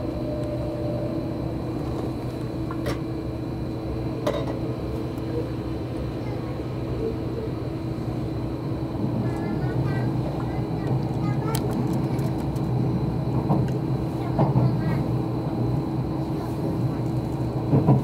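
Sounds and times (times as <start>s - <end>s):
train cabin rumble and hum: 0.0s - 18.0s.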